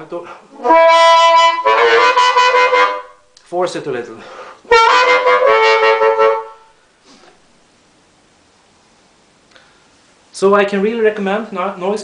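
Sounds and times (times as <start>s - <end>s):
faint steady hiss: 0.0s - 12.0s
amplified harmonica note: 0.5s - 3.2s, 4.2s - 6.8s.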